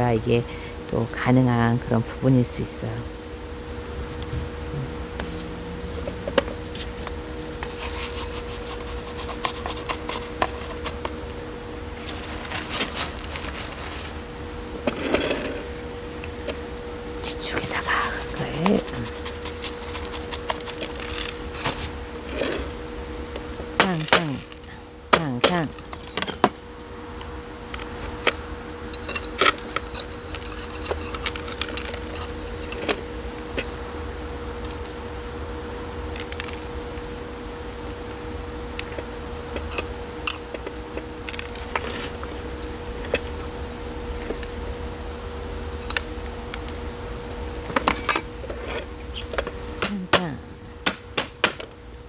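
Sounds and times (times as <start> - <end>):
steady low hum: 0.0 - 52.0
potting mix rustling and scraping: 5.2 - 11.2, 11.9 - 15.8, 17.2 - 22.8, 23.8 - 24.8, 29.1 - 34.3, 39.6 - 44.5.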